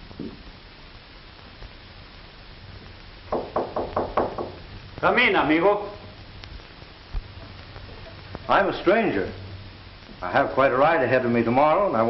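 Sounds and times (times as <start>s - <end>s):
sharp wooden knocks: 3.3s - 4.6s.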